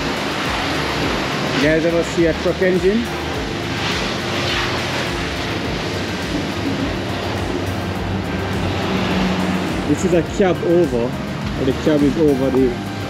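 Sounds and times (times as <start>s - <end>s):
vehicle engine running: 0.0s - 13.0s.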